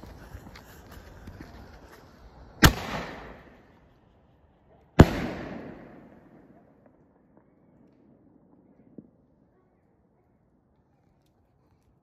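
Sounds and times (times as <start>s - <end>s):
rumbling echo: 5.0s - 8.9s.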